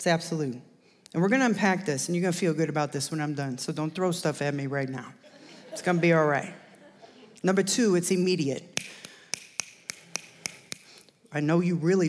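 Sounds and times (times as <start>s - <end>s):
fingers snapping: 8.7s - 11.2s.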